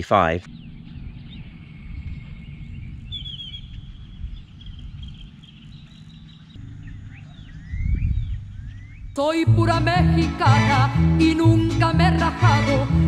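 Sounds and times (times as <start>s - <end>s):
steady low rumble: 0.0s - 13.0s
birds chirping and calling: 0.4s - 9.2s.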